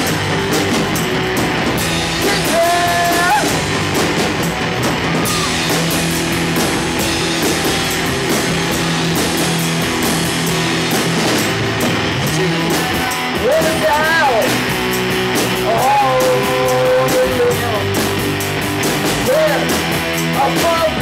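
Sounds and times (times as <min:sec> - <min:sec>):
drum kit: 0:00.0 - 0:21.0
electric guitars: 0:00.0 - 0:21.0.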